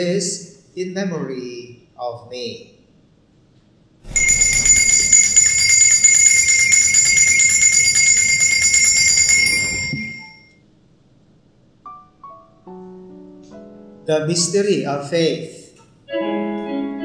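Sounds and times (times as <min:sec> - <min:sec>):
small bells shaken rapidly: 0:04.1 - 0:10.4.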